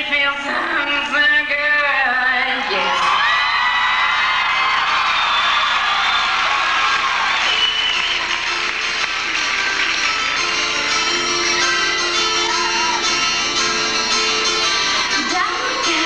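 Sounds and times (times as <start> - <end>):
applause: 2.6 - 12.5
audience cheering and whistling: 2.7 - 14.0
plucked harpsichord notes: 8.5 - 16.0.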